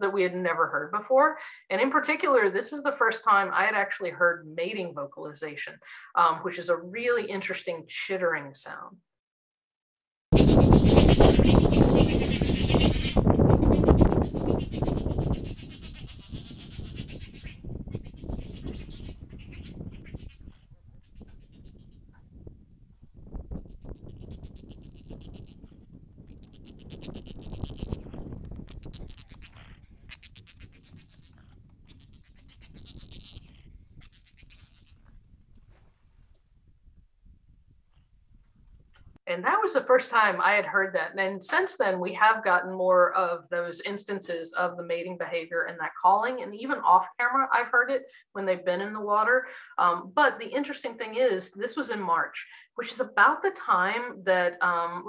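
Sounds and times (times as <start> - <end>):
otters chittering: 10.4 - 21.9, 23.7 - 35.2.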